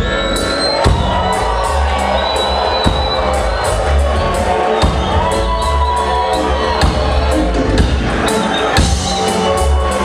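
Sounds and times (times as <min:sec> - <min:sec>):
live reggae band: 0:00.0 - 0:10.0.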